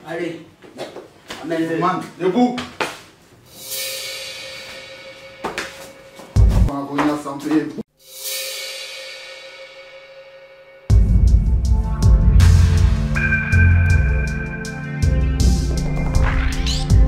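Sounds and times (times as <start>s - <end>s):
cymbal-like crash ringing: 3.5s - 6.1s, 8.0s - 10.9s, 12.4s - 15.7s.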